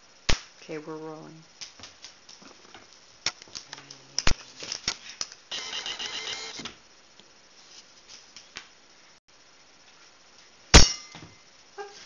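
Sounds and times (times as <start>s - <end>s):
candelabra crashing: 10.8s - 11.3s.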